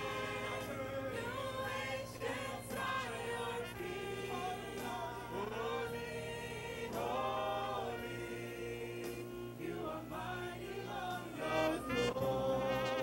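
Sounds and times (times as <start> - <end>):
gospel choir singing: 0.0 - 13.0.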